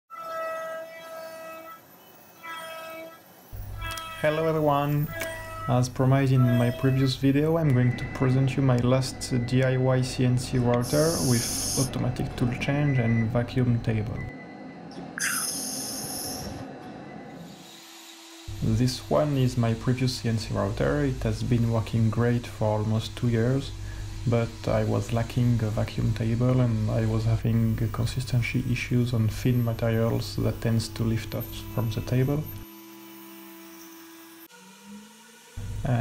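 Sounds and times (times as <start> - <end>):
low steady machine hum: 3.5 - 17.5, 18.3 - 36.0
router spindle whining: 3.6 - 11.9, 17.6 - 36.0
compressed air hissing: 10.8 - 12.0, 15.2 - 16.6, 20.2 - 27.5.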